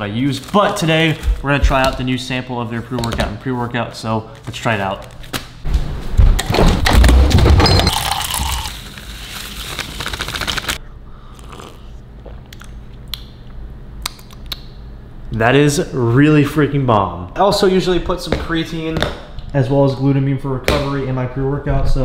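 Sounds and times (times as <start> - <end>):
plastic packet crinkling: 0.3 - 1.2, 7.9 - 10.8.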